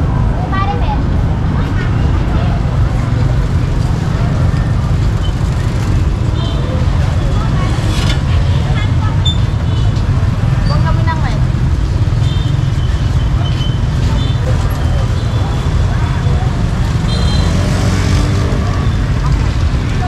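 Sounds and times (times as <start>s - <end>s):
people talking: 0.0s - 5.2s, 6.2s - 11.6s, 13.3s - 20.0s
low rumble of road traffic: 0.0s - 20.0s.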